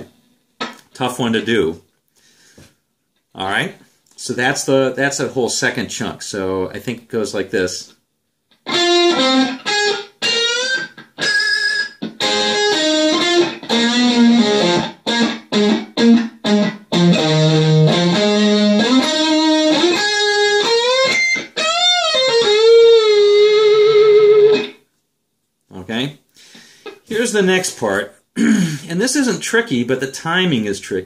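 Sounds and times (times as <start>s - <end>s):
electric guitar blues-rock solo: 8.5s - 24.8s.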